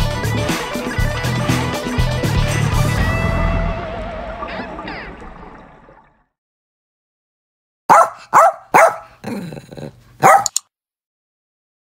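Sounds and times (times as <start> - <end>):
dog barking: 7.9 - 9.2, 10.2 - 10.6.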